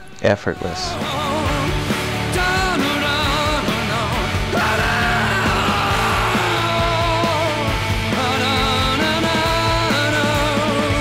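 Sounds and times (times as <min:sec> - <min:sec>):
man singing in strained voice: 0:00.5 - 0:11.0
rock band with drum beat: 0:01.0 - 0:11.0.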